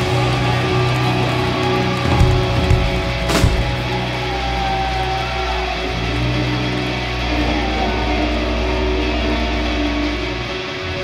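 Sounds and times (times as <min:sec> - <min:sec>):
electric guitars ringing notes: 0:00.0 - 0:11.0.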